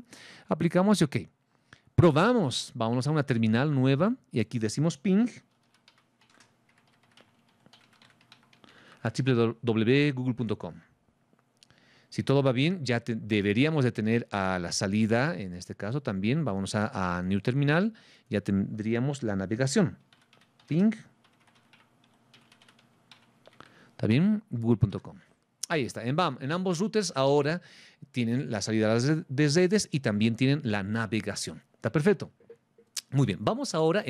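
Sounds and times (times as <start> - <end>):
keyboard typing: 5.5 - 9.1, 20.0 - 23.7.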